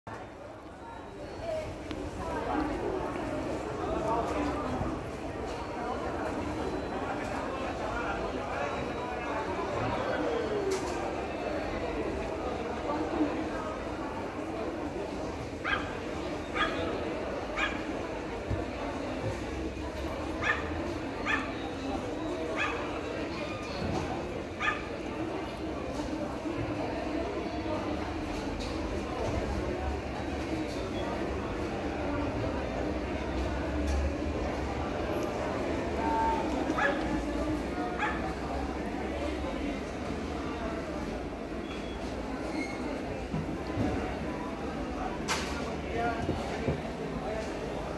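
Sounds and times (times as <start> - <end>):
low background murmur: 0.1 - 47.9
dog yipping: 15.6 - 15.9, 16.5 - 16.8, 20.4 - 21.6, 24.6 - 24.9.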